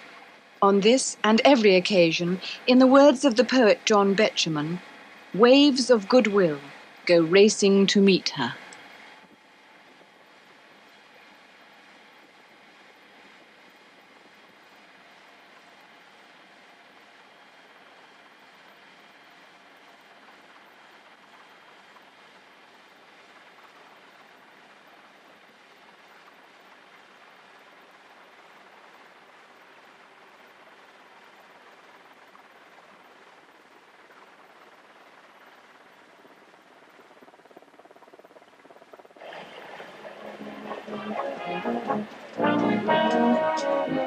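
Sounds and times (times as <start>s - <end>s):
faint steady hiss: 0.0s - 44.0s.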